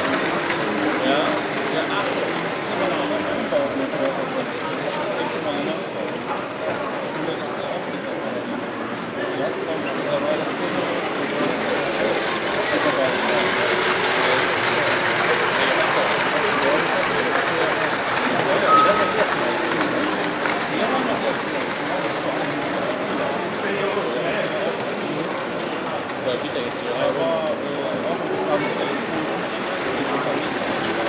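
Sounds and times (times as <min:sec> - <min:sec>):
crowd babble in echoing hall: 0:00.0 - 0:31.0
brief high tone: 0:18.7 - 0:19.6.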